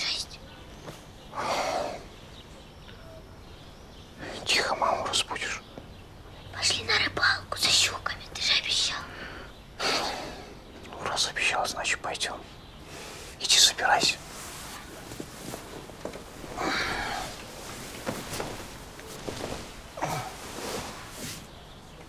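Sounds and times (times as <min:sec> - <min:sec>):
person whispering: 0:00.0 - 0:00.4, 0:04.2 - 0:05.6, 0:06.5 - 0:09.2, 0:10.9 - 0:12.5, 0:13.2 - 0:14.8.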